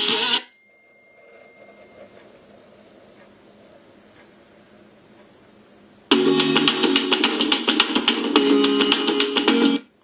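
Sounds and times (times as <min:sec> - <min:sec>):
loud music from stereo: 0:06.1 - 0:09.9.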